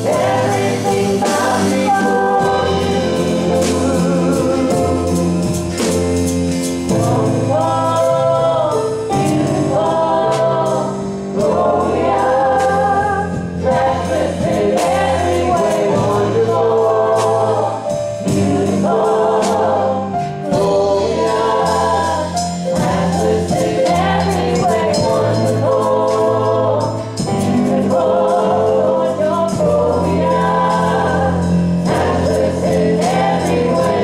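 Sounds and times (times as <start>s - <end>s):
gospel group singing in harmony: 0.0s - 34.0s
light percussion: 0.0s - 34.0s
live band bass line: 0.0s - 34.0s.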